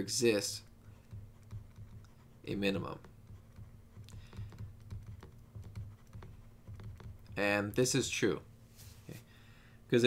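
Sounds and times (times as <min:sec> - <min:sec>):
low steady hum: 0:00.0 - 0:10.0
stylus tapping on tablet screen: 0:00.9 - 0:07.6.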